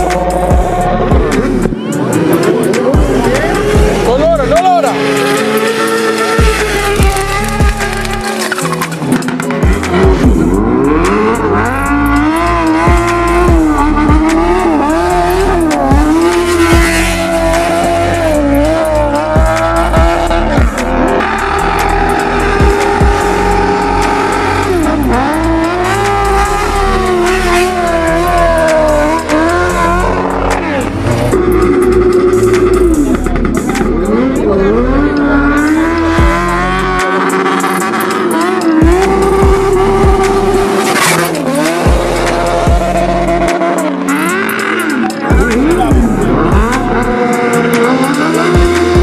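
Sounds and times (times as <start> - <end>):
engines revving: 0.0 - 49.0
music with bass line: 0.0 - 49.0.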